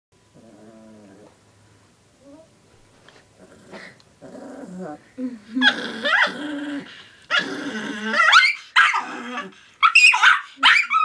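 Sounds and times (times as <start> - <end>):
small dog growling: 0.3 - 1.4, 3.4 - 9.7.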